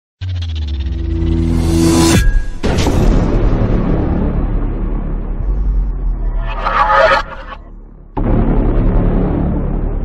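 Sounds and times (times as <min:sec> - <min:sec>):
low rumbling boom: 0:07.6 - 0:10.0.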